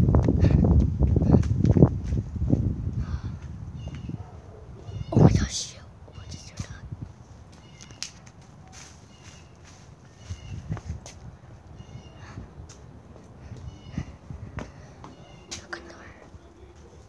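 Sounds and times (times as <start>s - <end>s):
footsteps: 6.6s - 11.6s, 12.6s - 17.0s.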